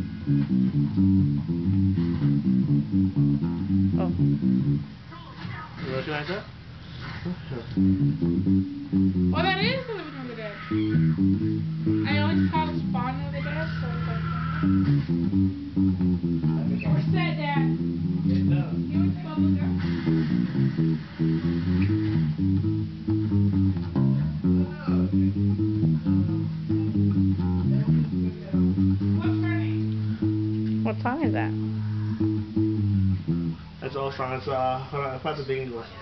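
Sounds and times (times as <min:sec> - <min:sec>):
electric bass guitar: 0:00.0 - 0:05.2, 0:05.8 - 0:34.1.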